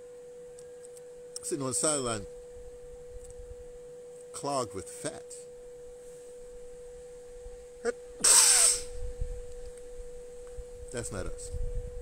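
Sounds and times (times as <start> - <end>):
man blowing his nose: 8.2 - 8.9.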